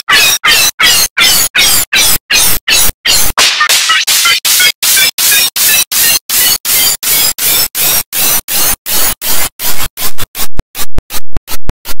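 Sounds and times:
harsh distorted noise bursts: 3.2s - 12.0s.

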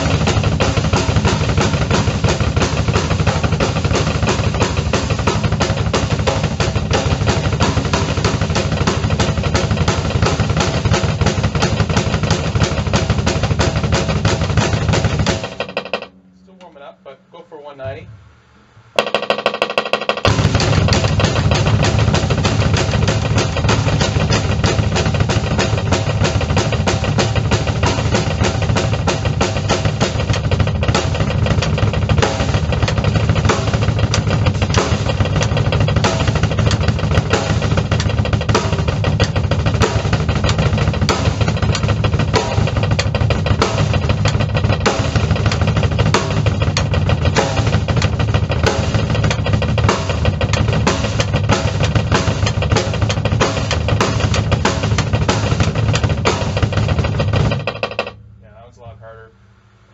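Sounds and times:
double pedal bass drum strokes: 0.0s - 59.9s.

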